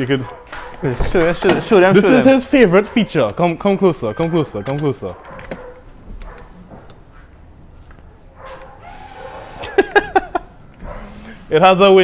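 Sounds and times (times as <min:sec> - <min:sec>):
laughter: 0:09.6 - 0:10.6.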